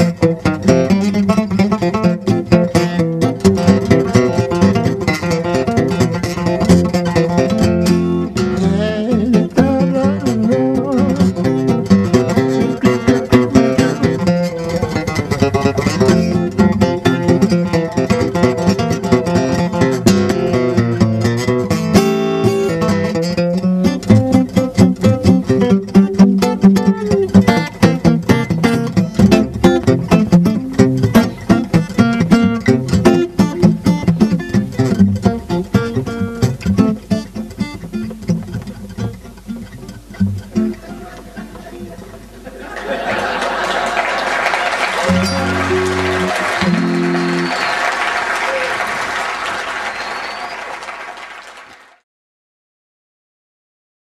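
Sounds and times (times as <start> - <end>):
acoustic guitar picking: 0.0 - 43.4, 44.9 - 47.7.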